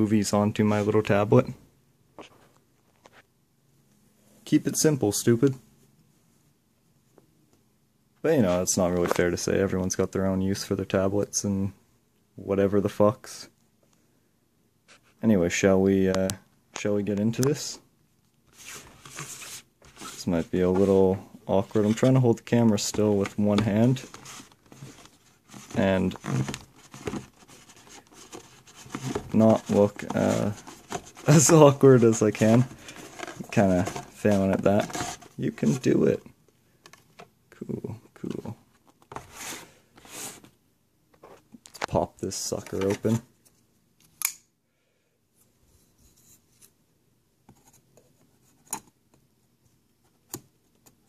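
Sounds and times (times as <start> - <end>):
cardboard box rubbing on desk: 18.5 - 22.2, 23.9 - 35.9, 39.2 - 40.5
faint scratching: 18.5 - 36.1.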